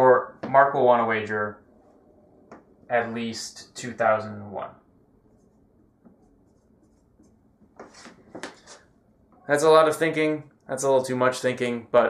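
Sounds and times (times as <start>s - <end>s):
marker squeaking on whiteboard: 5.3s - 8.9s.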